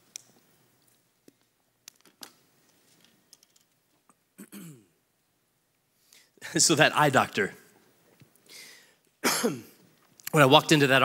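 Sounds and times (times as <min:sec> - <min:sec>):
man clearing his throat: 0:04.4 - 0:04.9, 0:09.2 - 0:09.8.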